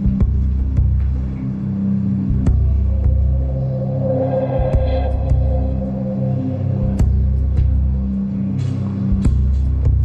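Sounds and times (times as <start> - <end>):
low throbbing drone: 0.0 - 10.0
high sustained note: 2.6 - 8.4.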